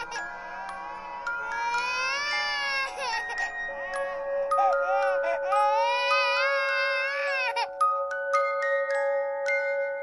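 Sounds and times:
baby crying: 0.0s - 7.8s
bell-like lullaby melody: 0.0s - 10.0s.

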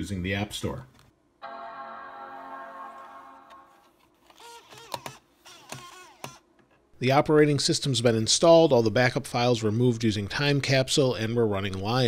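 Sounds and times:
optical drive whirring: 4.2s - 6.4s
disc drive clicks: 4.3s - 6.4s.

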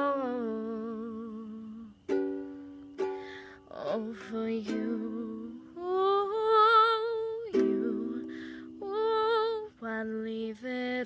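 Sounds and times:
ukulele strumming chords: 1.7s - 9.6s.

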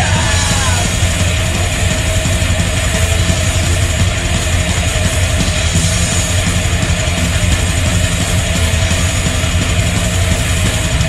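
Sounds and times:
heavy metal band playing: 0.0s - 11.0s.

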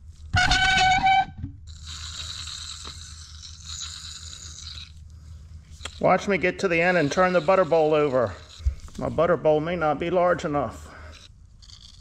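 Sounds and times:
piston rod squealing: 0.2s - 5.0s, 5.7s - 9.4s.

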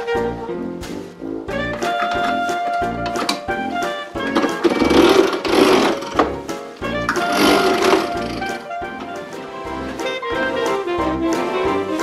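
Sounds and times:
upbeat jazzy music with brass: 0.0s - 12.0s
loud buzzing rattle: 4.6s - 6.2s, 7.2s - 8.6s.

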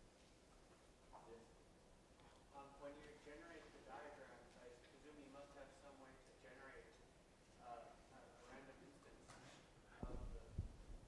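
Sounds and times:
soft thump: 10.0s - 10.8s.

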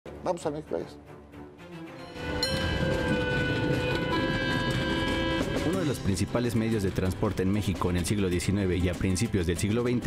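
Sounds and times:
train horn: 2.0s - 6.3s
train rumbling: 2.1s - 7.2s.

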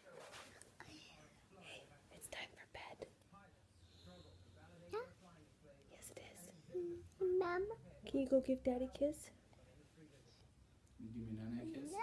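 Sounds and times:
faint whispering: 0.0s - 3.2s, 3.8s - 7.2s.

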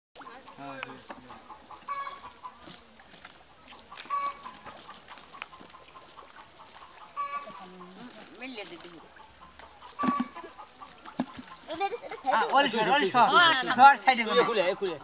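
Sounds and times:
chickens clucking: 0.2s - 15.0s.

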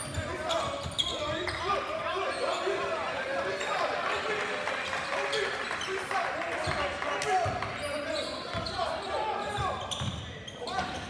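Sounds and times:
sneakers squeaking: 0.0s - 11.0s
voices in large gym: 0.0s - 11.0s.

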